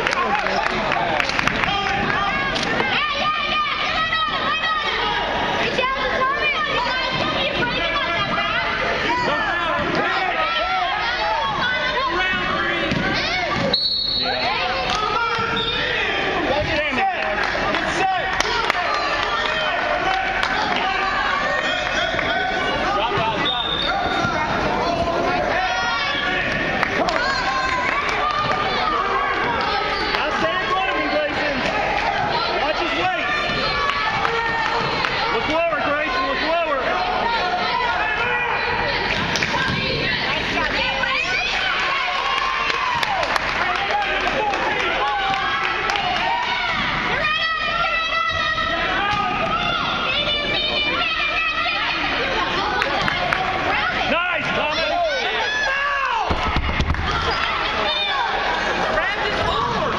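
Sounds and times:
chatter of spectators: 0:00.0 - 0:59.9
crowd noise: 0:00.0 - 0:59.9
voices shouting and calling: 0:00.0 - 0:59.9.

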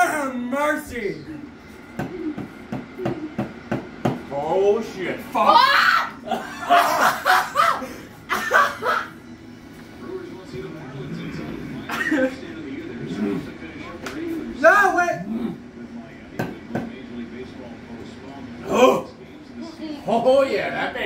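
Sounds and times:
people laughing and groaning: 0:05.6 - 0:09.2.

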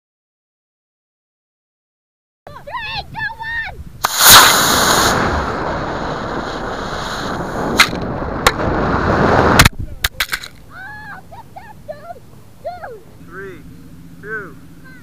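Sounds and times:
rocket motor rushing: 0:04.0 - 0:09.7
sharp cracks: 0:04.0 - 0:10.7.

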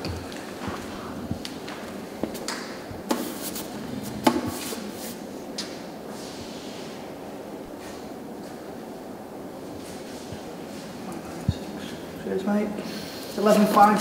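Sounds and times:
steady room hum: 0:00.0 - 0:14.0.

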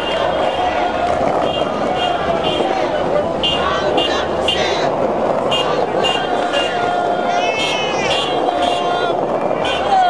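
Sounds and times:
street and crowd noise: 0:00.0 - 0:10.0
high-pitched voices calling out: 0:01.9 - 0:10.0.

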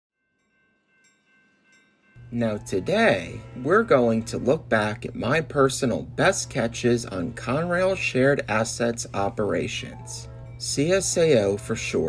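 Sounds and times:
faint high notes: 0:01.4 - 0:12.0.

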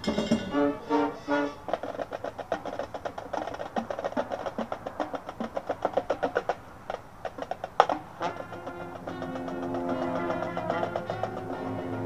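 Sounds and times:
marching band percussion strikes: 0:00.0 - 0:00.9, 0:07.8 - 0:12.0.

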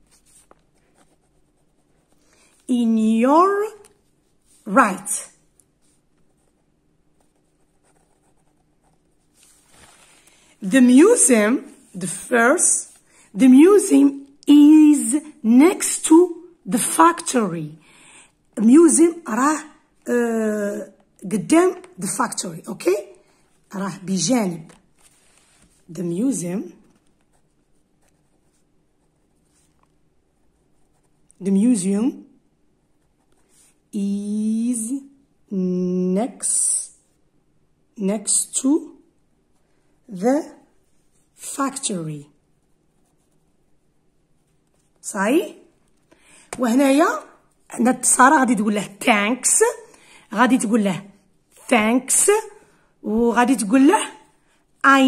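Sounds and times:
pen scratching on paper: 0:00.0 - 0:02.7, 0:05.8 - 0:09.8, 0:25.0 - 0:31.4, 0:40.2 - 0:45.8.

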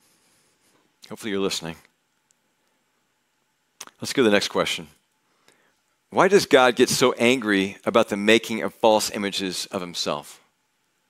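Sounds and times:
person speaking: 0:01.0 - 0:02.0, 0:03.8 - 0:05.0, 0:06.1 - 0:10.4
faint click: 0:02.2 - 0:02.8.

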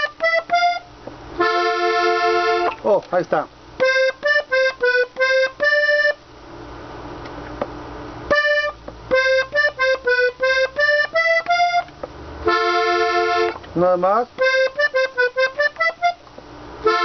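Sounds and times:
accordion melody: 0:00.0 - 0:02.9, 0:03.8 - 0:06.3, 0:08.2 - 0:17.0.

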